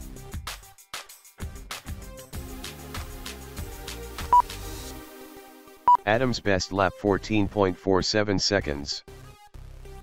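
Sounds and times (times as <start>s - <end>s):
background music with steady beat: 0.0s - 8.0s.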